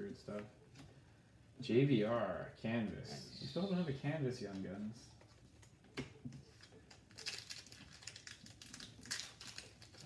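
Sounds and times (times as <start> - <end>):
foil wrapper crinkling and tearing: 6.5 - 10.0.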